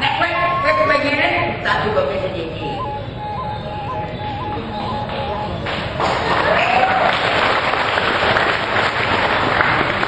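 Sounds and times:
audience applauding: 5.1 - 10.0.

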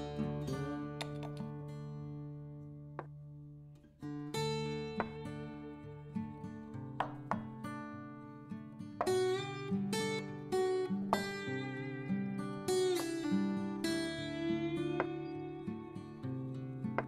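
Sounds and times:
plucked string music: 0.0 - 17.0.

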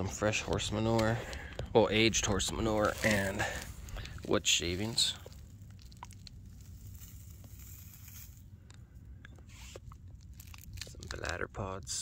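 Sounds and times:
mulch crunching and rustling: 0.0 - 12.0.

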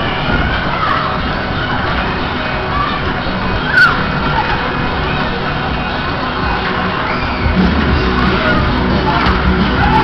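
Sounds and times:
riders shouting and cheering: 6.4 - 10.0
loud pop music: 7.4 - 10.0.

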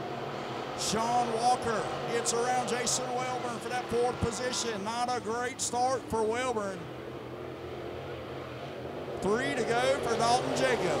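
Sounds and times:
race car engines: 0.0 - 11.0.

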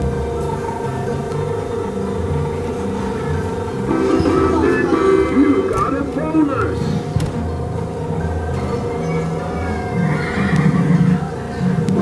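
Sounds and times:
ride soundtrack music: 0.0 - 12.0.

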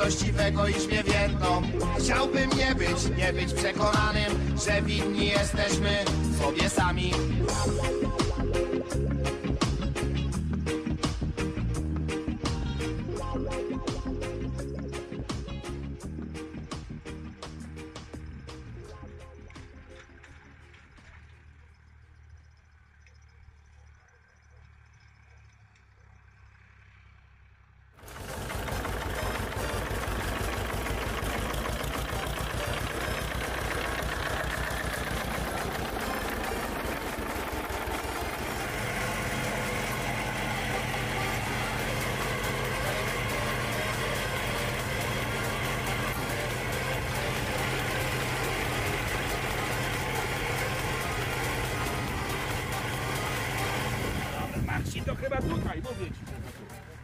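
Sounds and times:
tractor diesel engine running: 0.0 - 57.0.

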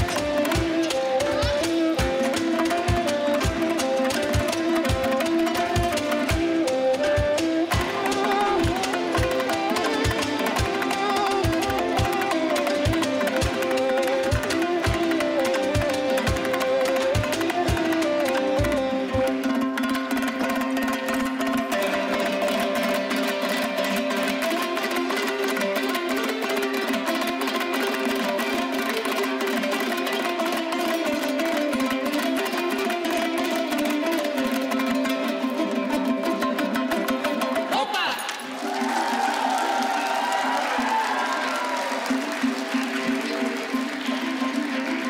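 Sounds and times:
strummed lutes playing folk music: 0.0 - 45.0.

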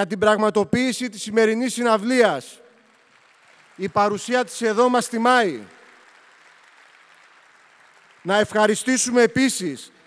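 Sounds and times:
faint applause: 2.6 - 10.0.

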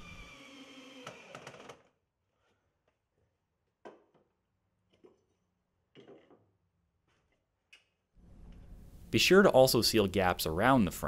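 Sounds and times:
faint cordless drill running: 0.0 - 1.9.

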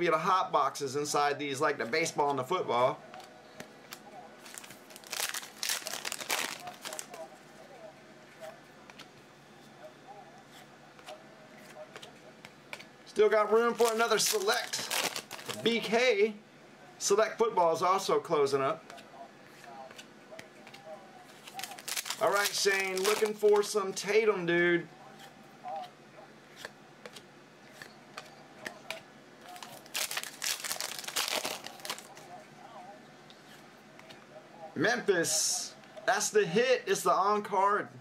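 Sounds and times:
wrapper crinkling and tearing: 4.4 - 7.2, 13.7 - 15.7, 21.4 - 23.7, 29.4 - 32.2.

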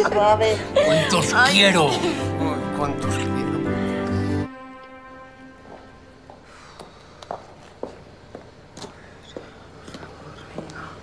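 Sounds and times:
footsteps on pavement: 5.6 - 11.0.

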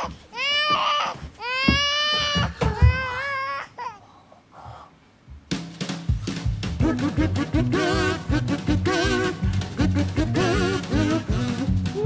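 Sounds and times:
high-pitched crying wails: 0.0 - 4.0.

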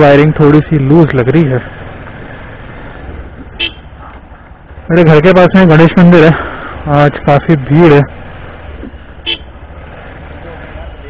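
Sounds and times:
vehicle rumble moving slowly: 0.0 - 11.0.

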